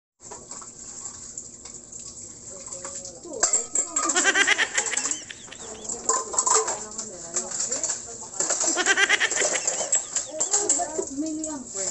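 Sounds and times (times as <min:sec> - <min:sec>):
tap water running into sink: 0:00.2 - 0:11.9
dishes clinking: 0:03.4 - 0:11.5
quick calls bending up and down: 0:04.2 - 0:06.1.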